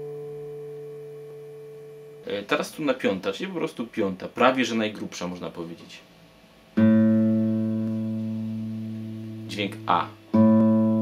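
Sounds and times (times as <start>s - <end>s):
plucked guitar string ringing: 6.8s - 11.0s.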